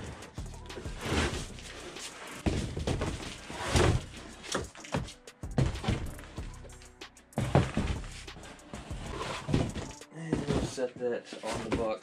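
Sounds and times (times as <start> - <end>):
cardboard scraping and rustling: 0.8 - 6.1, 7.4 - 12.0.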